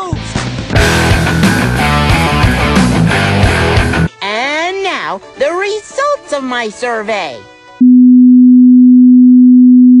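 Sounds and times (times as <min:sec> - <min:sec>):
low sine-wave test tone: 0:07.8 - 0:10.0.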